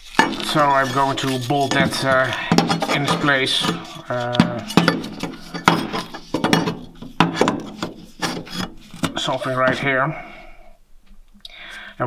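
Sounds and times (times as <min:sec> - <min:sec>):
metal plate knocking: 0:00.0 - 0:09.9
metal plate scraping: 0:00.0 - 0:10.5.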